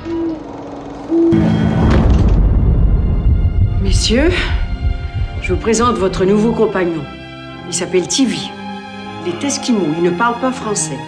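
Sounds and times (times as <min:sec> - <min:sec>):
low droning tones: 0:00.6 - 0:10.0
loud deep rumble: 0:01.2 - 0:07.7.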